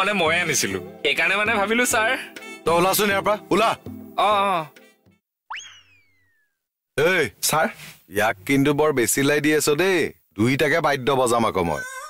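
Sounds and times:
cartoon swooping tone effect: 5.5 - 6.5.

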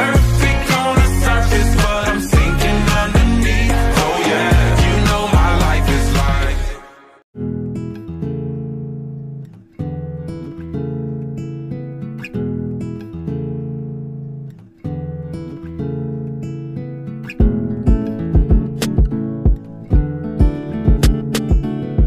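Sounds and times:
acoustic guitar strumming: 0.0 - 6.8, 7.4 - 22.0
kick drum: 3.2 - 3.4, 17.4 - 21.9.

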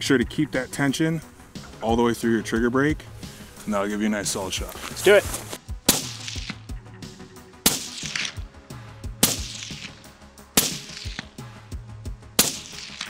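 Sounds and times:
music: 0.0 - 13.0
rifle shots with echo: 5.8 - 6.5, 7.6 - 8.4, 9.2 - 10.0, 10.6 - 11.4, 12.4 - 13.0.

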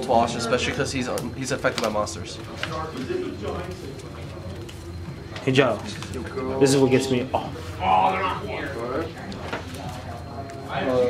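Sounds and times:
faint indistinct voices: 0.0 - 11.0
low room hum: 0.0 - 11.0.

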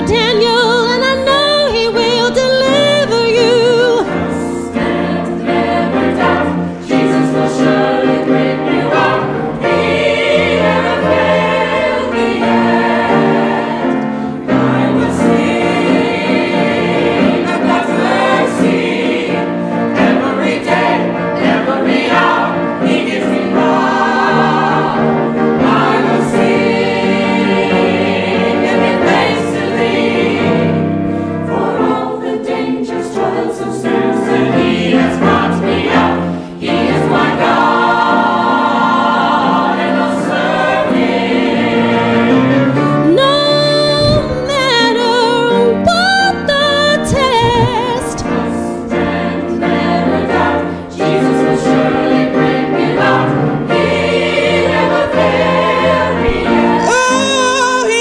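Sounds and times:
choir singing gospel song: 0.0 - 58.0.

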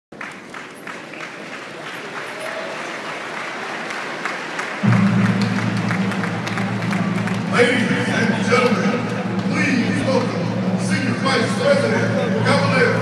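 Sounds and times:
crowd applauding: 0.1 - 13.0
loud low steady tone: 4.8 - 13.0.

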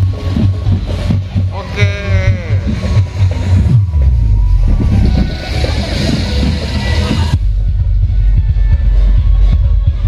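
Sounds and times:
deep rumble of vehicles: 0.0 - 10.0
music: 0.0 - 10.0.

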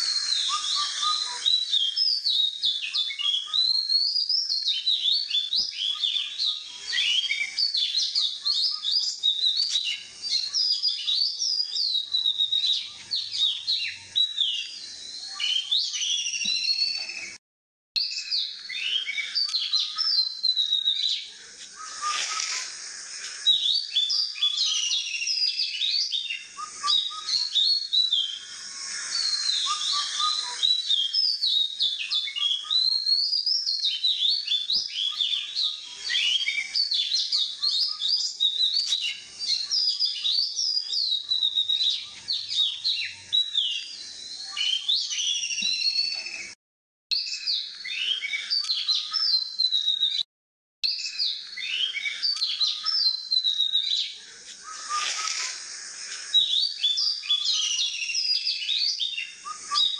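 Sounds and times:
birds chirping and whistling: 0.0 - 17.4, 18.0 - 50.3, 50.9 - 59.9.

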